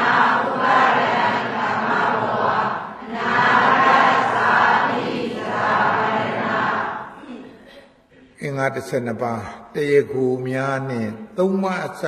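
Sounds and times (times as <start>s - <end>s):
man chanting: 8.3s - 12.0s.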